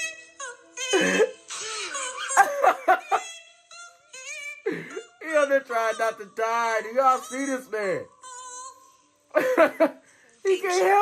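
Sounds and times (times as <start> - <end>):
man laughing hard: 2.2 - 3.3, 9.4 - 10.0.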